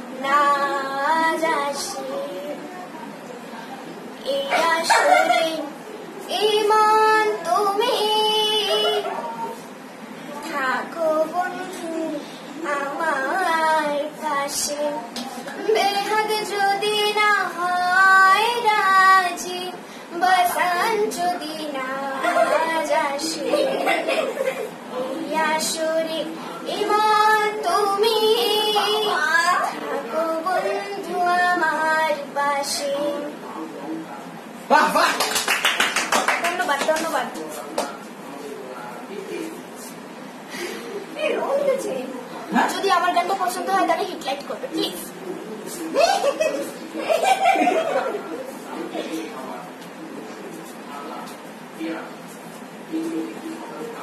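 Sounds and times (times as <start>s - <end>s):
girl singing unaccompanied: 0.0s - 3.1s, 4.2s - 9.6s, 10.3s - 24.1s, 24.9s - 33.4s
people speaking: 0.1s - 35.4s, 36.3s - 54.0s
people laughing: 4.5s - 5.8s, 8.6s - 9.6s, 22.0s - 24.8s, 45.9s - 49.2s.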